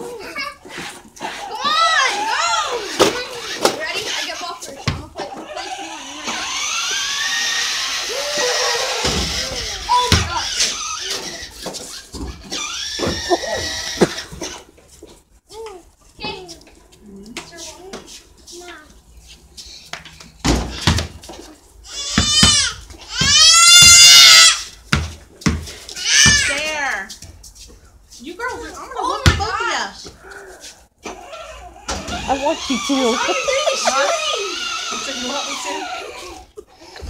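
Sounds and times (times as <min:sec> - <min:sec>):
child shrieking: 0:01.4 - 0:02.9, 0:07.9 - 0:11.3, 0:13.0 - 0:14.2, 0:21.9 - 0:24.7, 0:26.0 - 0:26.7, 0:30.4 - 0:36.5
basketball bouncing on concrete: 0:03.0 - 0:05.3, 0:09.0 - 0:14.4, 0:20.0 - 0:21.3, 0:22.0 - 0:23.4, 0:24.7 - 0:27.3, 0:29.0 - 0:30.2
small electric motor whining: 0:05.6 - 0:11.6, 0:31.2 - 0:36.5.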